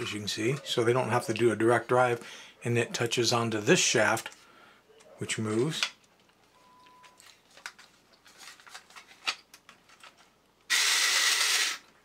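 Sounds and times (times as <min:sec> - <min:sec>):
toy motor and gears whirring: 0:10.7 - 0:11.8.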